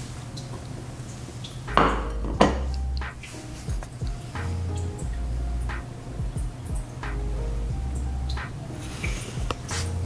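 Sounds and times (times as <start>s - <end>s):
plate knocking on hard floor: 1.8s - 2.7s.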